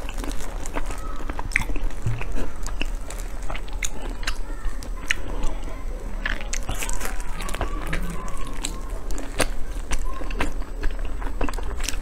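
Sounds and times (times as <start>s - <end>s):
sticky chewing and biting: 0.0s - 12.0s.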